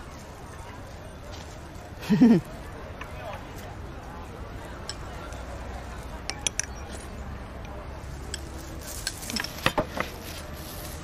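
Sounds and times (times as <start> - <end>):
faint background chatter: 0.0 - 11.0
tableware clinking: 6.3 - 7.0.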